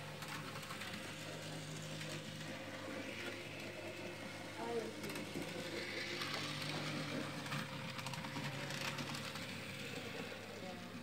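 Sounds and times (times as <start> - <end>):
wheels clicking over track: 0.0 - 11.0.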